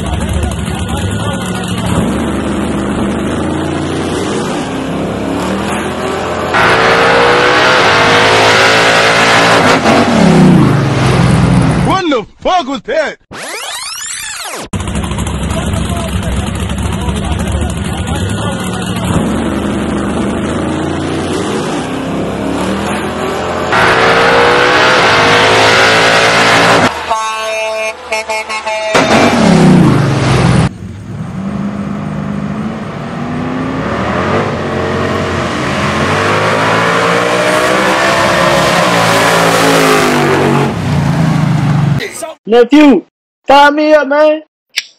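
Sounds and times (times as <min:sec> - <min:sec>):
drag race car engines revving: 0:00.0 - 0:11.9, 0:13.4 - 0:27.2, 0:27.9 - 0:42.0.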